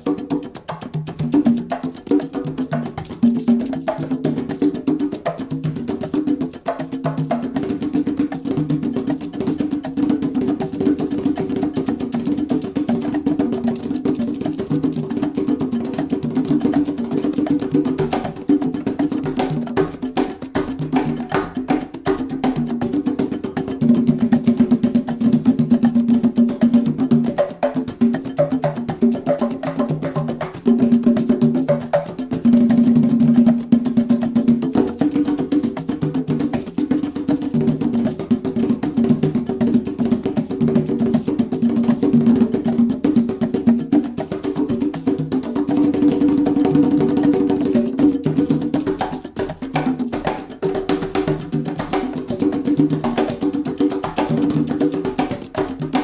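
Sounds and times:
congas played with hands: 0:00.0 - 0:56.0.

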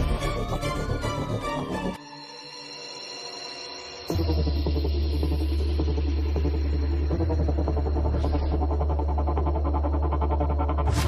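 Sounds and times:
dramatic electronic score: 0:00.0 - 0:11.0.

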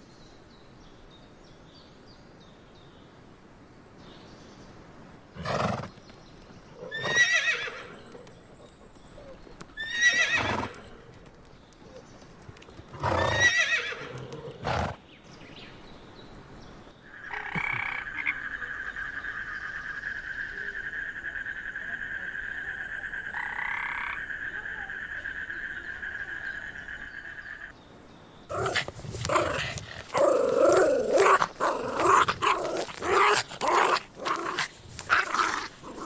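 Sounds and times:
horses whinnying: 0:06.8 - 0:08.2, 0:09.8 - 0:11.1, 0:13.0 - 0:15.0.

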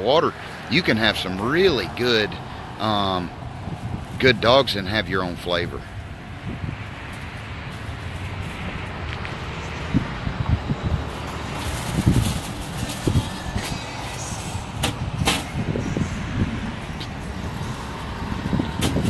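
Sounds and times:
road traffic: 0:00.0 - 0:19.0.

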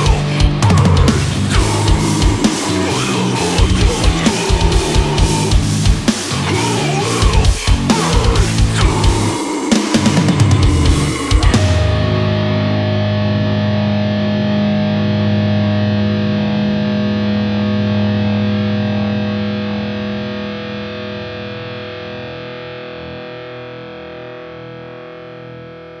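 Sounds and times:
distorted electric guitar chord ringing: 0:00.0 - 0:26.0.

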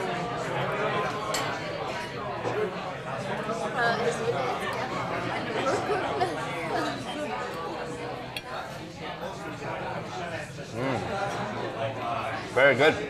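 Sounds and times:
people chattering: 0:00.0 - 0:13.0
cutlery clinking on plates: 0:01.2 - 0:01.6.

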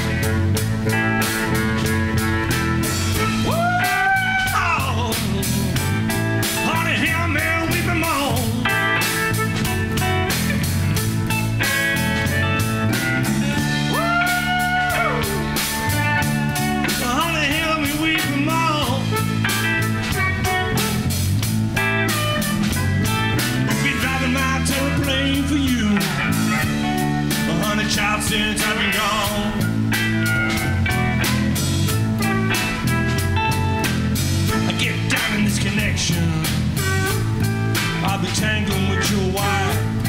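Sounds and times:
harmonica bent notes: 0:00.0 - 0:25.4, 0:26.0 - 0:40.0
electric blues band playing: 0:00.0 - 0:40.0.

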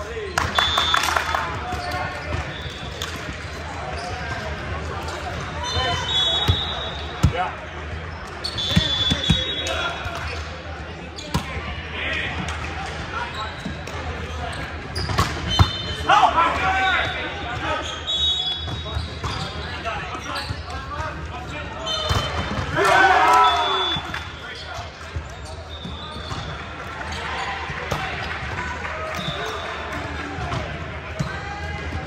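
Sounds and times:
shoes squeaking on court: 0:01.6 - 0:11.6, 0:13.2 - 0:16.1, 0:17.0 - 0:22.7, 0:23.5 - 0:28.5
players shouting: 0:21.9 - 0:24.6.

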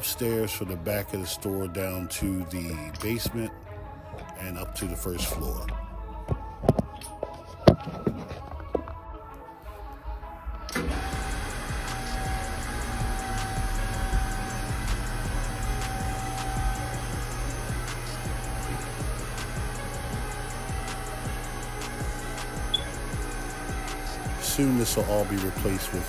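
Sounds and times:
lift motor hum: 0:10.3 - 0:26.0.

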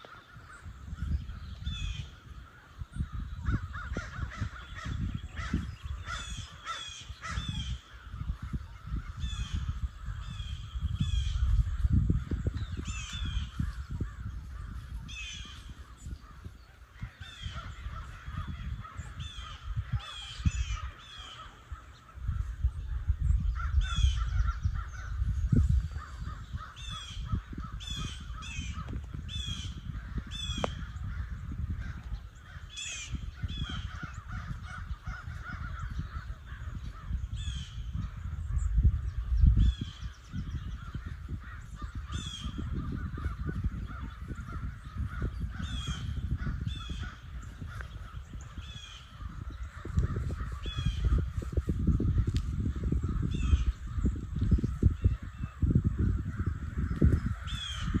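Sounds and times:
birds calling: 0:00.0 - 0:58.0
wind rumbling on microphone: 0:00.0 - 0:58.0.

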